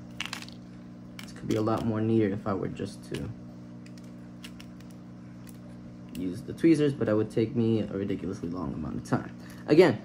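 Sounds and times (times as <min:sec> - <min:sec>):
steady low hum: 0:00.0 - 0:10.0
gravel pebbles clicking: 0:00.1 - 0:02.0.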